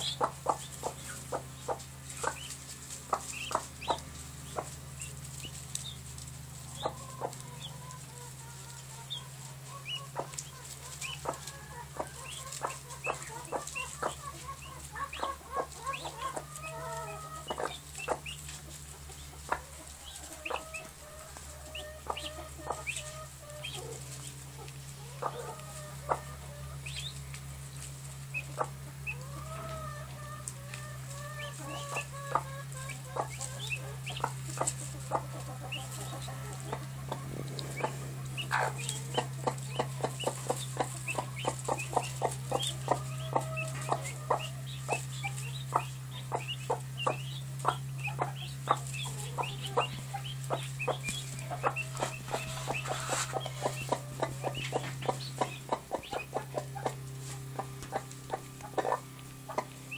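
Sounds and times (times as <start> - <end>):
chicks peeping: 0.0 - 59.9
hen clucking: 0.0 - 59.9
steady low hum: 0.0 - 59.9.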